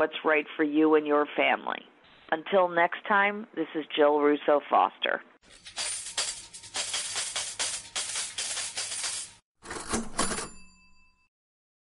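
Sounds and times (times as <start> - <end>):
bell ringing: 10.2 - 11.3.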